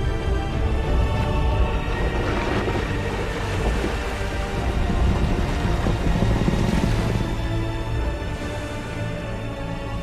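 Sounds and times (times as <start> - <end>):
deep steady rumble: 0.0 - 10.0
orchestral music: 0.0 - 10.0
rushing water: 0.0 - 10.0.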